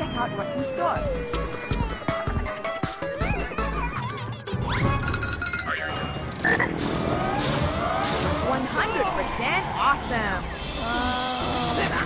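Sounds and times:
cartoon music: 0.0s - 6.8s.

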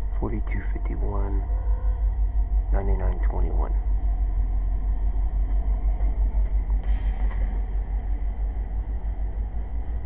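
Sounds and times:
freight train rolling on rails: 0.0s - 10.0s.

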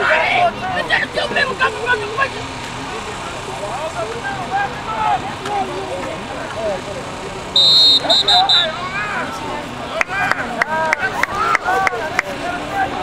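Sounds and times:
spectators shouting and cheering: 0.0s - 13.0s
referee's whistle blast: 7.6s - 8.8s.

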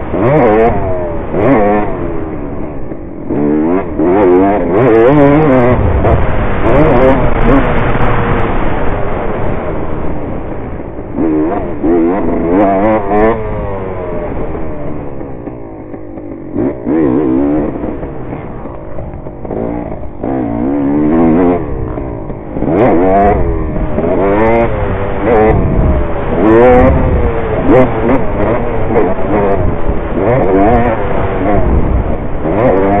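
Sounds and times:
dirt bike engine revving: 0.0s - 33.0s.

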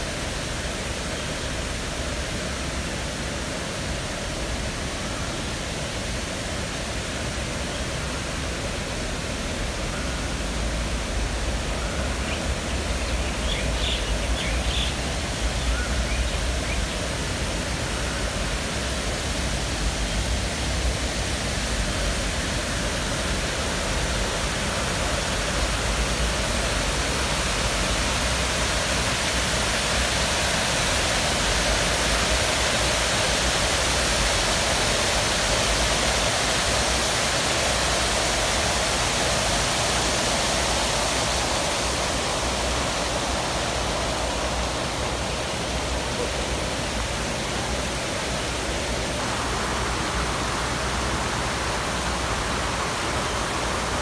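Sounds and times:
fountain water cascading: 0.0s - 54.0s.

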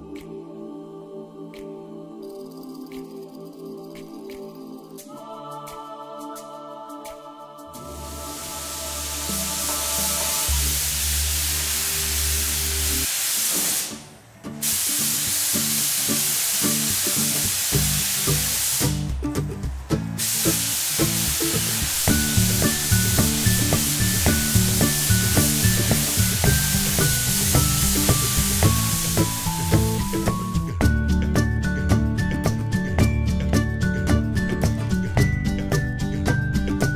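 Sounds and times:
background music: 0.0s - 36.9s
spray gun hissing: 7.8s - 30.7s.

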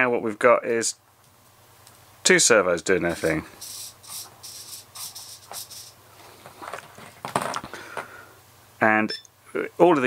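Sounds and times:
servos whirring: 3.1s - 6.0s.

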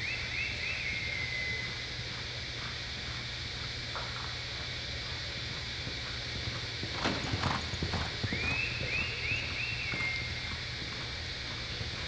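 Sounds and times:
horse hoofbeats on dirt: 1.5s - 12.0s.

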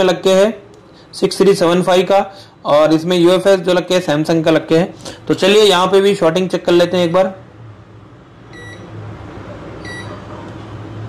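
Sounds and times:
low electrical hum: 0.0s - 11.0s
multimeter short beeps: 8.5s - 8.9s, 9.8s - 10.2s.

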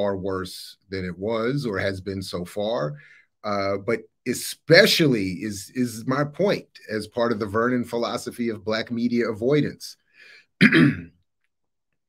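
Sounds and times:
man clearing his throat: 10.6s - 11.2s.

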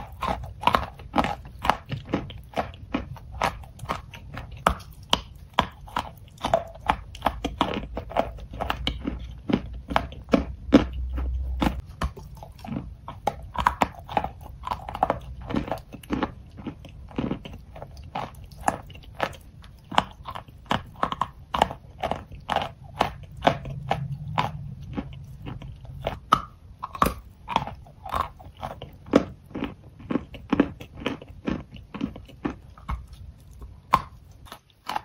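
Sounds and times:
chewing chalk crunches: 0.0s - 35.0s.

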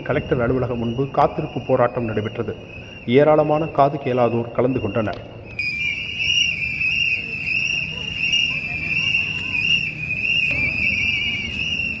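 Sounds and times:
high-pitched whistle tone: 0.0s - 12.0s
crowd murmur: 5.6s - 12.0s.

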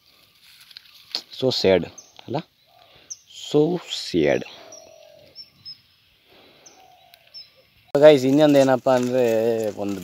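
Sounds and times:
songbird chirps: 0.0s - 10.0s
man speaking: 1.2s - 2.5s, 3.3s - 4.7s, 7.9s - 10.0s.

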